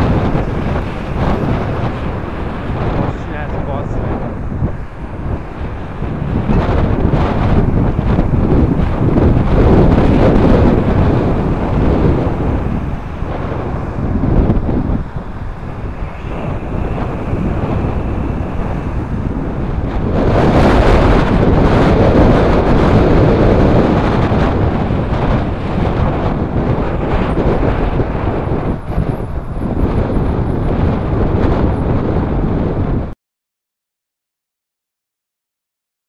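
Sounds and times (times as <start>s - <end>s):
traffic noise: 0.0s - 33.0s
wind rushing over microphone: 0.0s - 33.2s.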